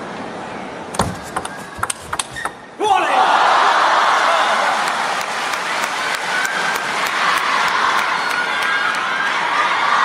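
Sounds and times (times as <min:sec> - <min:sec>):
crowd applauding: 0:03.3 - 0:10.0.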